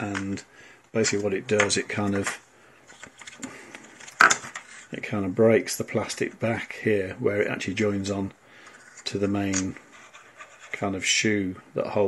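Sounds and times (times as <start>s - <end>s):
plastic parts clicking and rustling: 1.0s - 4.7s.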